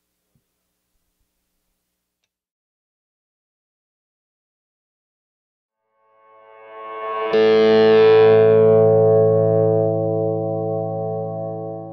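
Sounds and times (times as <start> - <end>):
distorted electric guitar chord: 6.0 - 11.9.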